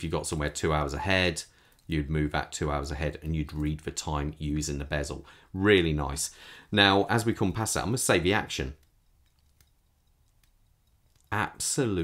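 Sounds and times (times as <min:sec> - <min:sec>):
watch bezel clicking: 0:01.6 - 0:02.0, 0:08.7 - 0:11.4.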